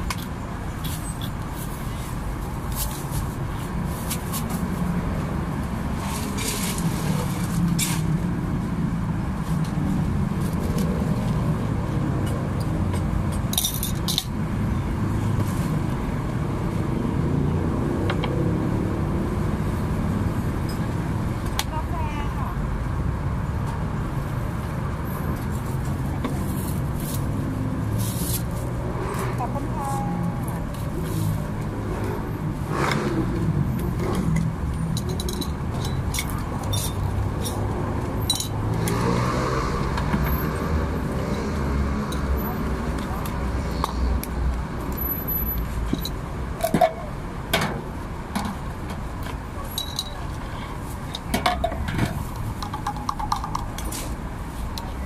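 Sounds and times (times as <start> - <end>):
traffic rumble: 0.0 - 55.0
steel cups and utensils clinking: 49.7 - 50.2.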